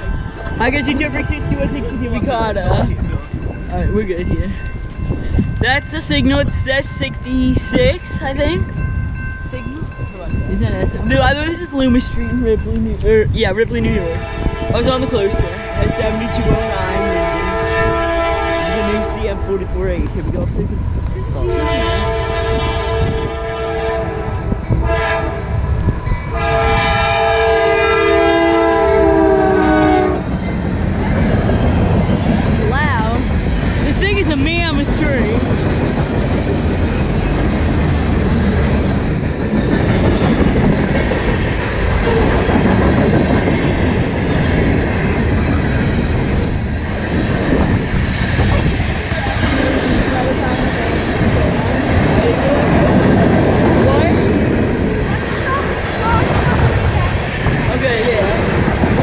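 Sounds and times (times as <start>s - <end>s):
locomotive horn blasts: 14.1s - 19.3s, 21.4s - 25.6s, 26.3s - 30.3s
train wheels clattering on rails: 30.2s - 59.0s.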